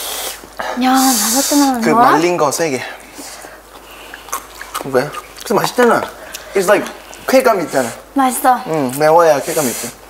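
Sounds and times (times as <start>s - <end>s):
person speaking word: 1.4s - 2.4s.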